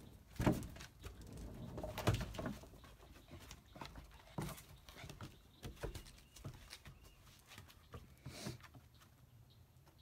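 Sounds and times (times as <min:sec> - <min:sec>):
paws pattering on wooden boards: 0:00.1 - 0:09.2.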